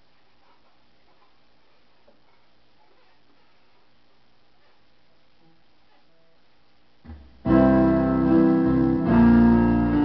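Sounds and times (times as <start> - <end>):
faint electrical hum and hiss: 0.0 - 10.0.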